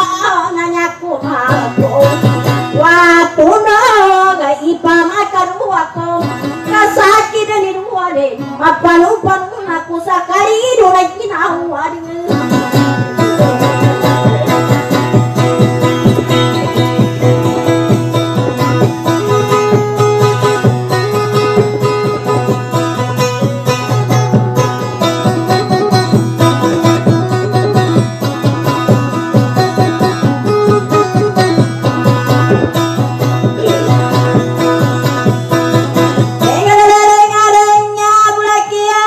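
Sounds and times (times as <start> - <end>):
acoustic guitar strumming: 0.0 - 38.7
person singing: 1.2 - 3.9, 12.0 - 39.0.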